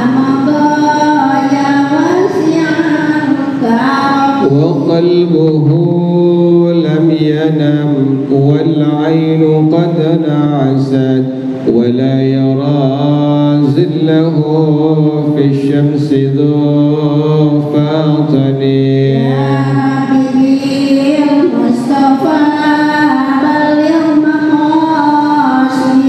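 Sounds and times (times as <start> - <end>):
man chanting into a microphone: 3.9 - 20.7.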